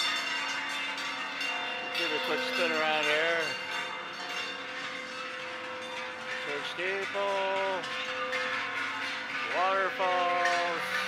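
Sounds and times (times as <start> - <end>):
bells ringing: 0.0 - 11.0.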